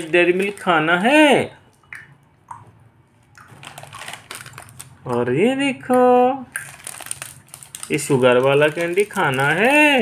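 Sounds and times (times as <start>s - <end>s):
plastic candy packet crinkling: 0.0s - 1.0s, 3.5s - 5.4s, 6.6s - 10.0s
person speaking: 0.0s - 1.6s, 7.8s - 10.0s.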